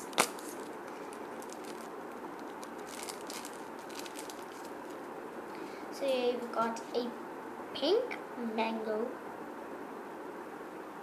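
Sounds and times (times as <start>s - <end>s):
crinkling of paper cutouts: 0.0s - 5.1s
steady background hiss: 0.0s - 11.0s.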